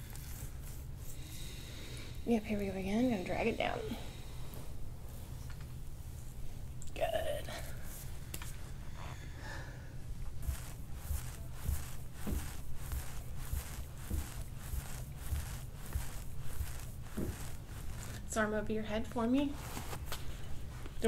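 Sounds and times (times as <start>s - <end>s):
low room hum: 0.0s - 21.0s
metal bar scraping skin: 10.4s - 18.5s.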